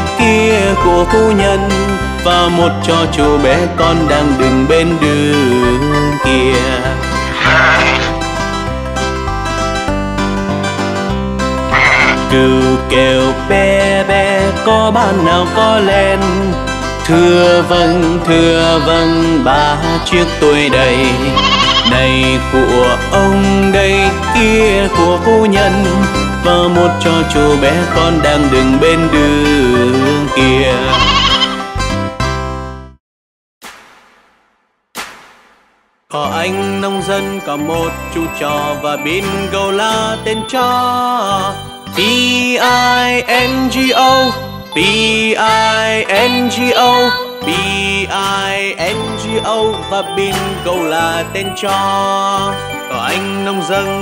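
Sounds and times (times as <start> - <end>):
instrumental nursery rhyme music: 0.0 - 33.0, 36.1 - 54.0
cartoon sheep bleat: 7.3 - 8.2, 11.7 - 12.3, 21.3 - 22.1, 30.8 - 31.6.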